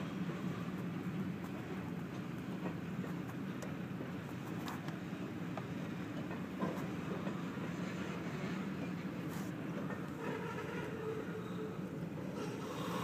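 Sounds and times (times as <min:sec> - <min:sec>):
steel train wheels rumbling on rail: 0:00.0 - 0:13.0.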